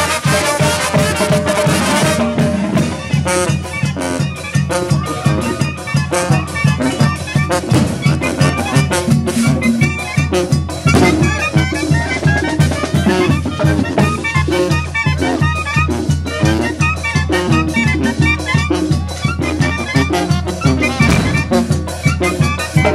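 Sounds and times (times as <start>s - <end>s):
drums and congas beat: 0.0s - 22.9s
trombones: 0.0s - 22.9s
trumpets: 0.0s - 22.9s.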